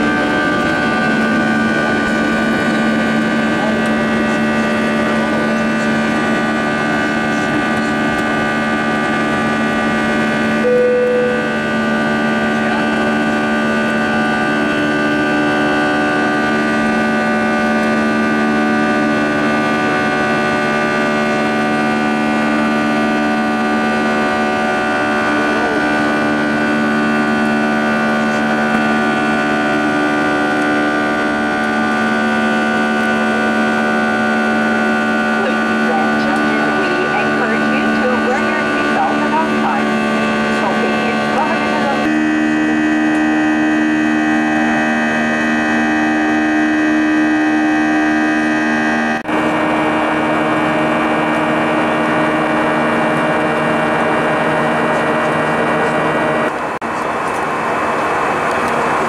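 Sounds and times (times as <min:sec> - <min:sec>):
jet engines loud steady drone: 0:00.0 - 0:59.0
short single tone: 0:10.6 - 0:11.6.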